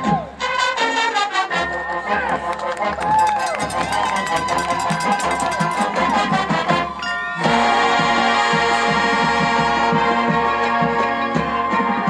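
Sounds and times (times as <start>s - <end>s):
voices calling out: 0.0s - 9.2s.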